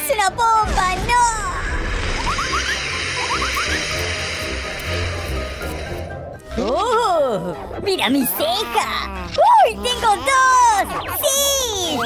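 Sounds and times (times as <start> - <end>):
short rising whistles: 2.0 - 4.6.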